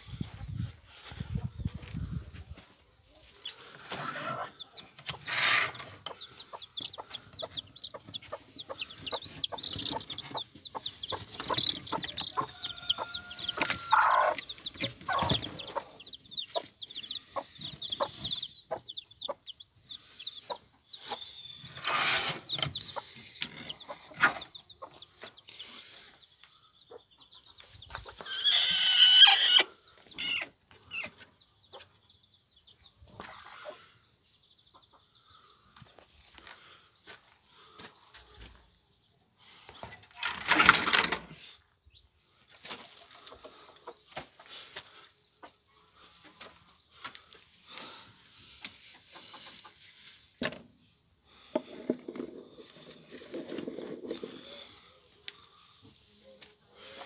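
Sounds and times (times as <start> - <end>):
chicks peeping: 0.0 - 39.0, 41.6 - 57.0
hen clucking: 3.4 - 26.0, 26.9 - 31.9
loud chicken call: 12.1 - 16.0, 28.1 - 31.1.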